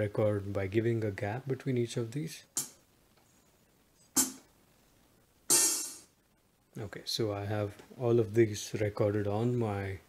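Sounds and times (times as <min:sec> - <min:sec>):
drum kit hit: 0:04.2 - 0:04.4, 0:05.5 - 0:06.1.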